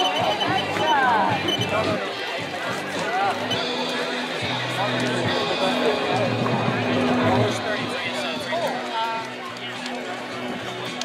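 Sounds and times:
music playing outdoors: 0.0s - 11.0s
people talking and chattering: 0.0s - 11.0s.

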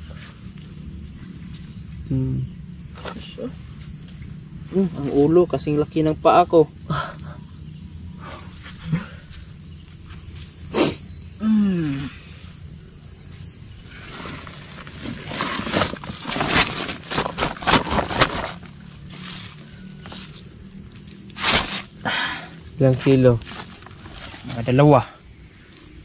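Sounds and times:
insects buzzing: 0.0s - 26.0s
falling voice-like grunt: 11.4s - 12.2s.

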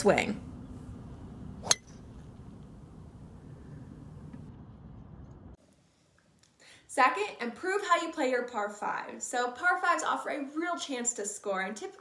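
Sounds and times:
golf ball struck crack: 1.6s - 2.3s.

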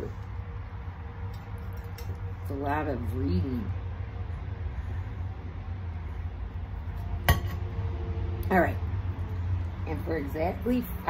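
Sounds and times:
low hum: 0.0s - 11.0s.

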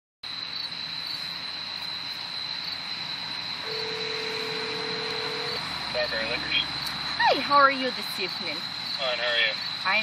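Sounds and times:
crickets chirping: 0.2s - 10.0s
telephone ringback tone: 3.7s - 5.6s.

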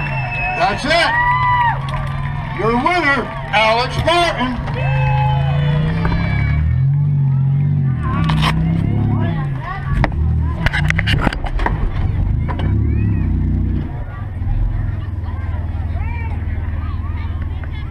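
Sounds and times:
car engine revving: 0.0s - 17.9s.

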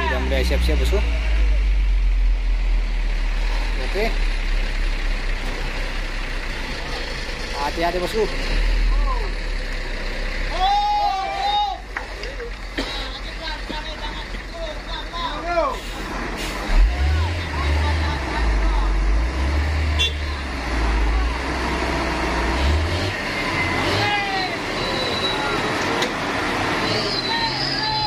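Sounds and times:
diesel truck engine under load: 0.0s - 10.6s, 11.8s - 28.0s
men shouting: 10.5s - 11.9s, 23.8s - 24.9s.

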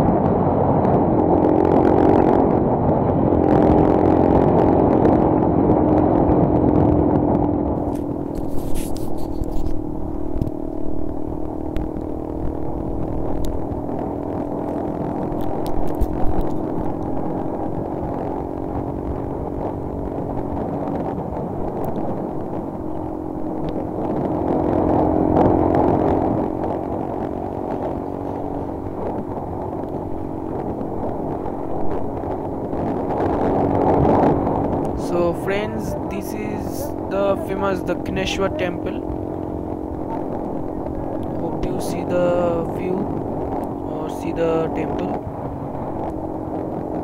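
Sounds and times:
motorcycle engine running: 0.0s - 47.0s
road and wind noise: 0.0s - 47.0s.

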